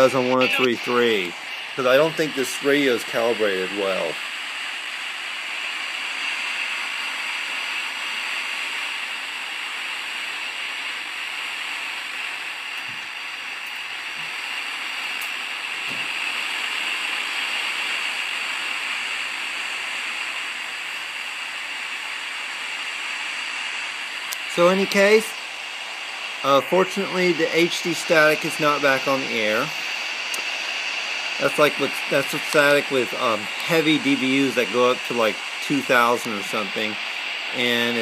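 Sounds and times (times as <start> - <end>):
radio static hiss: 0.0 - 38.0.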